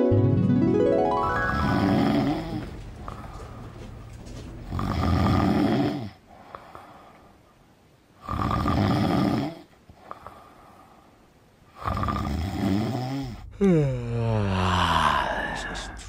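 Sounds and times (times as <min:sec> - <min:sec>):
man breathing heavily: 0:01.7 - 0:05.0, 0:06.2 - 0:07.5, 0:13.3 - 0:16.0.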